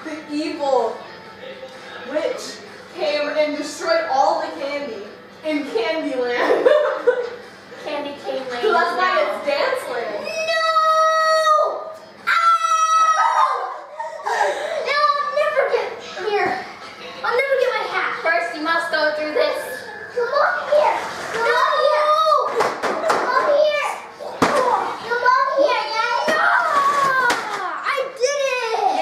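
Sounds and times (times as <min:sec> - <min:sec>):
child crying out: 0:10.2 - 0:14.0
children calling out: 0:10.2 - 0:15.7, 0:19.6 - 0:29.0.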